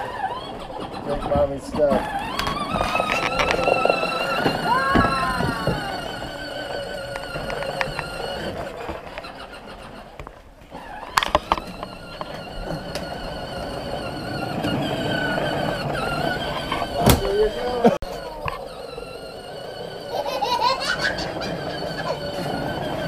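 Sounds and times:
toy tractor motor whine: 0.0s - 23.0s.

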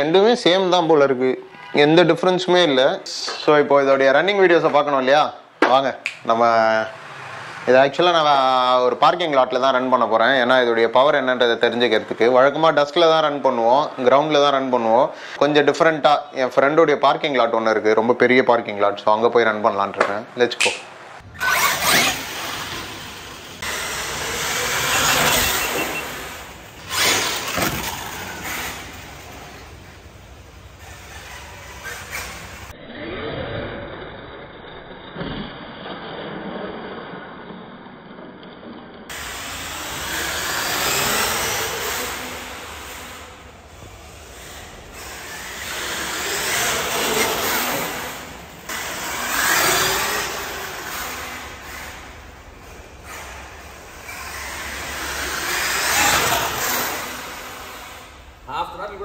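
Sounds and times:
tyres on concrete: 19.8s - 30.1s
rc truck motor surging: 21.2s - 37.4s, 39.1s - 59.0s.

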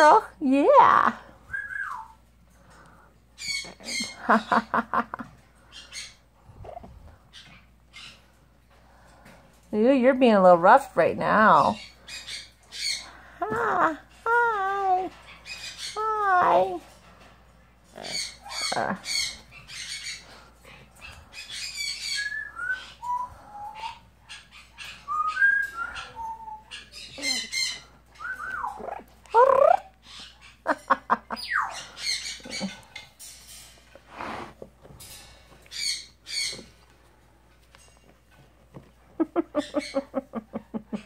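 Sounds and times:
parrot squawking and whistling: 1.5s - 2.2s, 21.4s - 30.4s.

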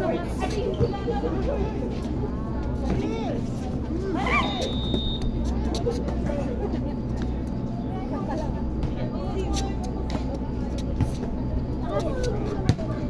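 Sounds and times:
scattered voices: 0.0s - 13.0s
steady low hum: 0.0s - 13.0s
high whistle note: 4.3s - 5.3s.

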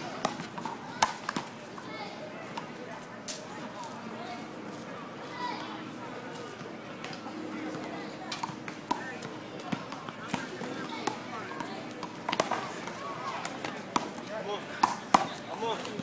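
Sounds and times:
people talking indistinctly: 0.0s - 16.0s.

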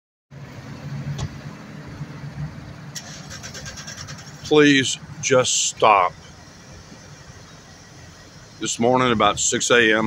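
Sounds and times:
car engine running: 0.3s - 10.0s
road traffic: 0.3s - 10.0s.

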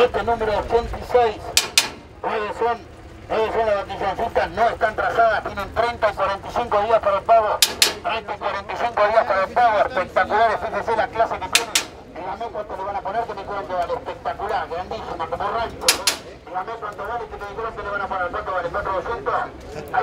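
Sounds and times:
auctioneer calling bids: 0.0s - 20.0s.

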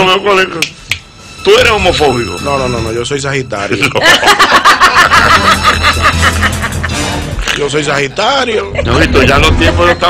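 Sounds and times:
people laughing: 3.7s - 7.2s, 8.4s - 10.0s.

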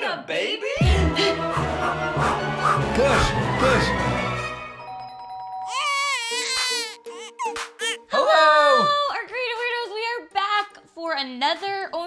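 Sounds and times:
jingle music: 0.8s - 7.9s
newborn baby crying: 5.7s - 9.0s.

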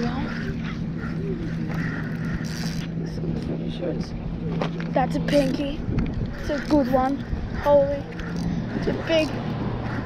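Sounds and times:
fishing reel whirring: 0.0s - 3.1s, 5.3s - 10.0s
wind rumble on microphone: 5.2s - 10.0s.

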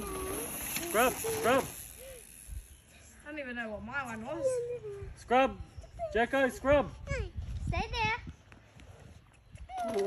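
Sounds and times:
faint outdoor noise: 0.0s - 10.0s.

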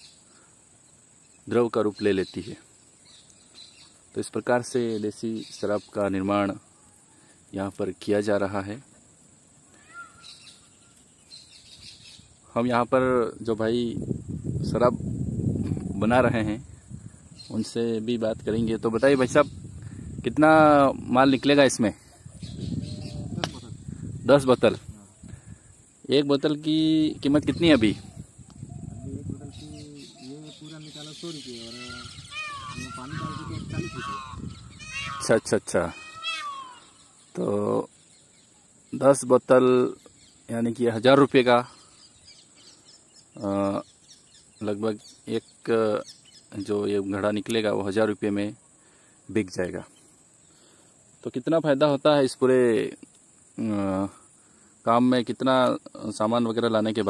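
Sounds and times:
faint bird chirps: 0.0s - 14.0s, 20.8s - 51.3s
animal's high-pitched cry: 9.7s - 10.4s, 31.8s - 37.0s.

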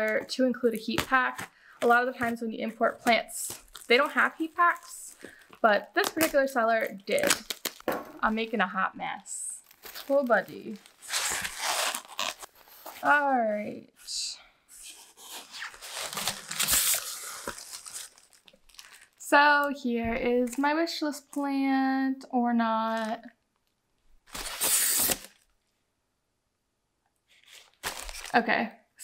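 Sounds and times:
packing material crinkling and tearing: 0.0s - 8.6s, 9.5s - 13.0s, 15.2s - 19.2s, 23.6s - 25.5s, 27.3s - 28.4s.

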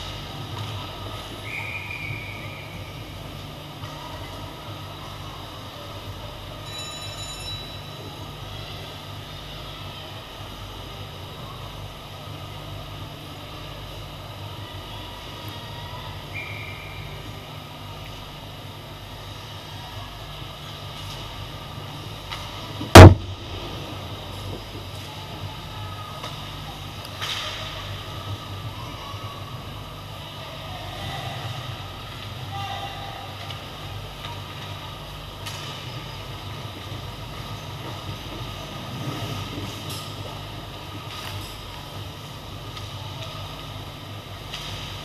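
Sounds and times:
ice rink rumble: 0.0s - 7.4s, 8.0s - 45.0s
loud sharp hockey hit: 22.9s - 23.7s.

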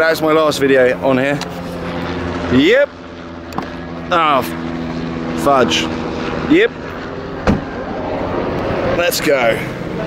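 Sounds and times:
steady background hum: 0.0s - 10.0s
car boot lid thump: 7.4s - 7.6s.

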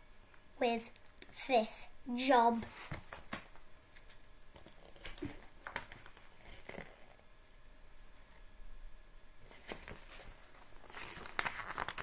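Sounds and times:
paper pages rustling: 2.6s - 7.2s, 9.4s - 12.0s.

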